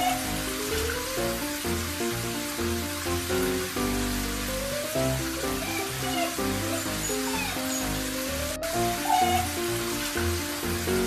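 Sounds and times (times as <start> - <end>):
background music: 0.0 - 11.0
water spraying into a sink: 0.0 - 11.0.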